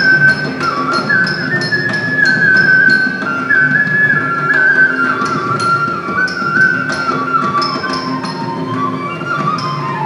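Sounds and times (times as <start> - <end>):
flute melody: 0.0 - 10.0.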